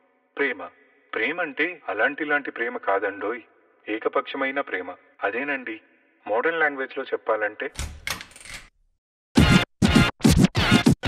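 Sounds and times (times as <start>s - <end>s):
music: 9.4s - 11.0s
turntable scratching: 9.4s - 11.0s.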